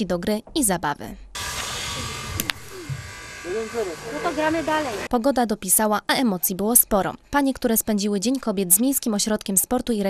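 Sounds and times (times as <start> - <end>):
women talking: 4.2 - 10.0.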